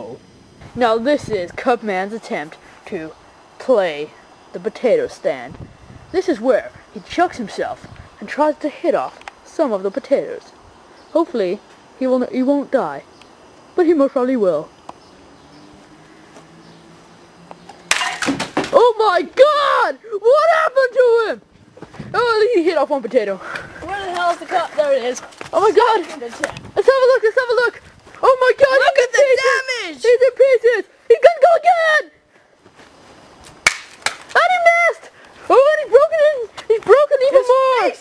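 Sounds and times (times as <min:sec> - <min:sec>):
faint background hum: 0:00.0 - 0:38.0
cup smashing loud crack: 0:17.9 - 0:18.8, 0:33.7 - 0:34.3.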